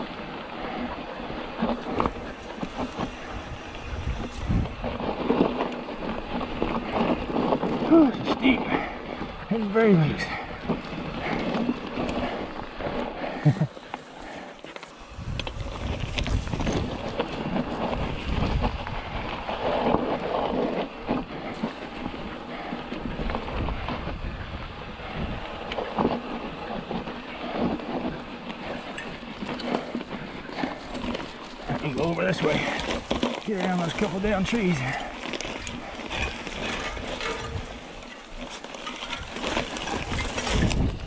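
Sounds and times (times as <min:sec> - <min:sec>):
bike rattles and clicks: 0:00.0 - 0:41.0
bike tyres rumbling over gravel: 0:00.0 - 0:41.0.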